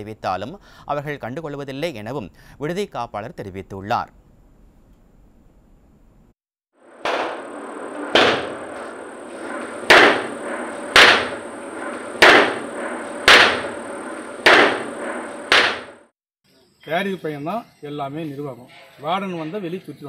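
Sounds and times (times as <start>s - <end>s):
room noise: 6.8s - 16.1s
sharp blows: 6.8s - 16.1s
thin high whine: 6.8s - 16.1s.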